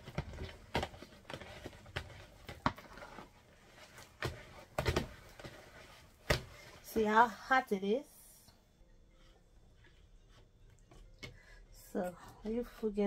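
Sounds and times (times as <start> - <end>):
wooden spoon beating dough in bowl: 0.0 - 7.2.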